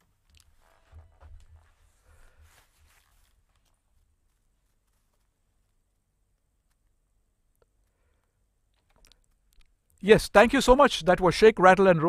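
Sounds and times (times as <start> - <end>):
handling bumps and rustles: 0.0 - 5.7.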